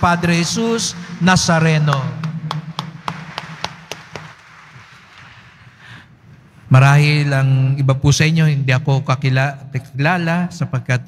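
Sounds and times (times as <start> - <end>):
congregation applauding: 0.0 - 5.8.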